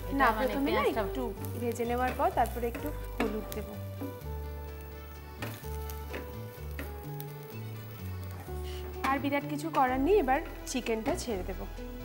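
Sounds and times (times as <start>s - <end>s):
onions sizzling in a pan: 0.0s - 12.0s.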